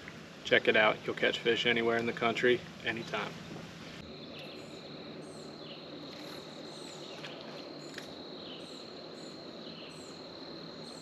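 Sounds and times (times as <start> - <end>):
high insect drone: 4.0 - 11.0.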